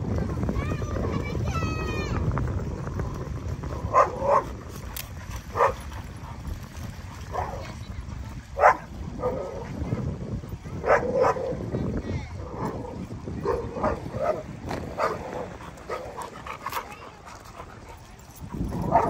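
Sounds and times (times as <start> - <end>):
dogs barking and yipping: 3.8 - 6.6, 7.2 - 7.8, 8.6 - 9.8, 10.7 - 11.6, 12.6 - 19.0.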